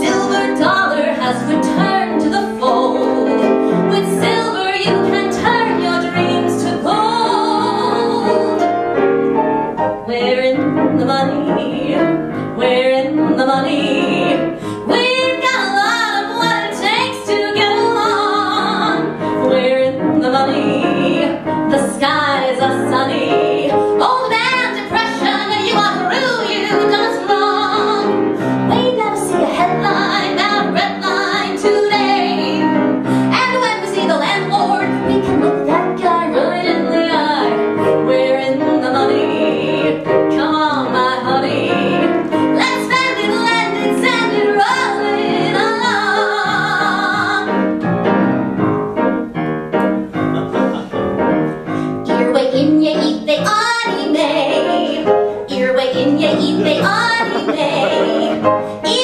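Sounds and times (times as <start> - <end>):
woman singing: 0.0 - 8.8, 10.0 - 47.7, 52.0 - 59.0
piano accompaniment: 0.0 - 59.0.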